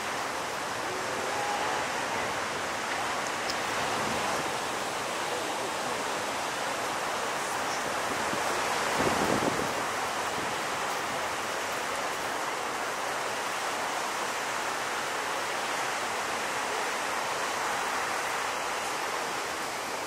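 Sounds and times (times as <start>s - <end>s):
heavy surf roaring: 0.0s - 20.0s
whitewater washing: 0.0s - 20.0s.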